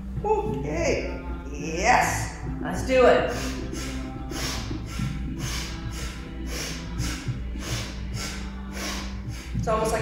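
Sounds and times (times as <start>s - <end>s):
music with low sustained tones: 0.0s - 10.0s
forceful breathing through nose: 3.3s - 9.6s.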